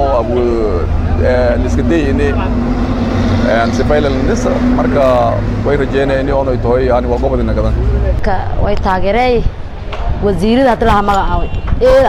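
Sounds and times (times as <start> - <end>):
man speaking: 0.0 - 2.7, 3.3 - 8.2
vehicle engine running: 0.0 - 8.6.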